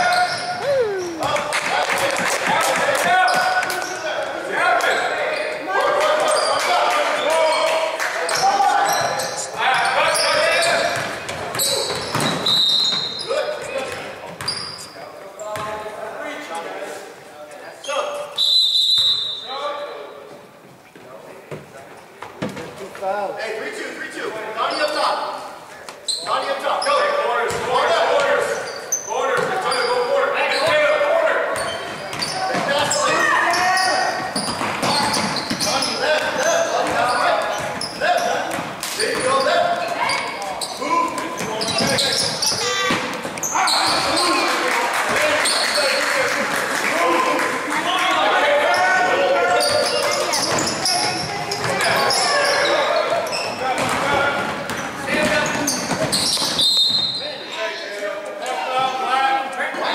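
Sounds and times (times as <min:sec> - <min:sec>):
voices calling out in hall: 0:00.0 - 0:59.9
referee's whistle: 0:12.4 - 0:13.3, 0:18.4 - 0:19.6, 0:56.2 - 0:57.4.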